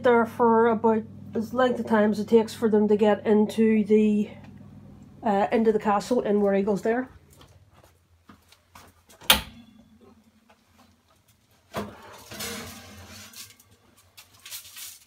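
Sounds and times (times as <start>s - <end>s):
baking tray scraping: 11.7s - 13.7s.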